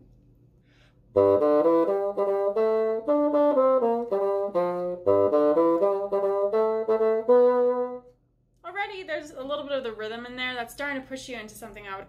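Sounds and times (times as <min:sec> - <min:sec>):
solo bassoon playing: 0:01.1 - 0:08.2.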